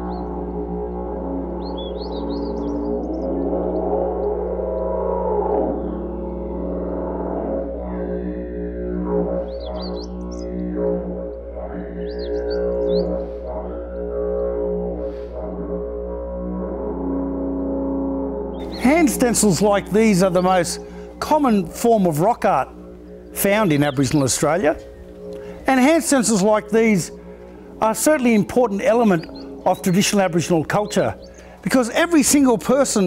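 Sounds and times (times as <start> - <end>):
didgeridoo drone: 0.0 - 33.0.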